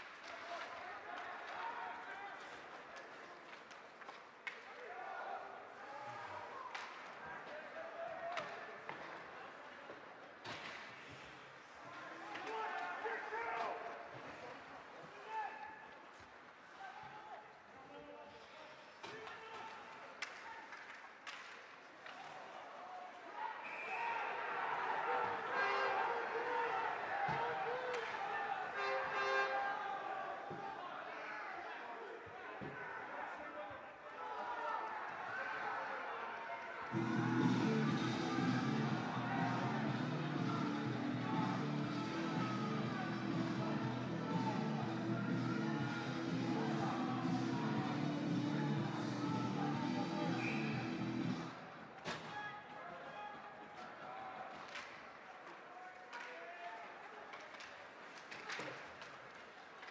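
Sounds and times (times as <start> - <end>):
murmur of spectators and voices: 0.0 - 59.9
hockey sticks and puck clacking: 6.7 - 7.7, 8.3 - 11.4, 19.0 - 22.4
crowd shouting: 23.5 - 30.9, 34.2 - 51.6.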